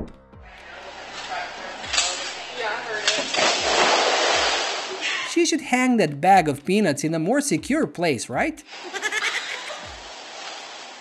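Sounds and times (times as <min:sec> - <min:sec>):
packing peanuts rustling: 0:09.7 - 0:11.0.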